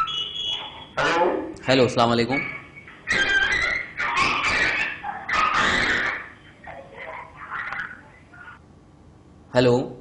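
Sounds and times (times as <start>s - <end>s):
harsh garbled phone line noise: 0.0s - 8.6s.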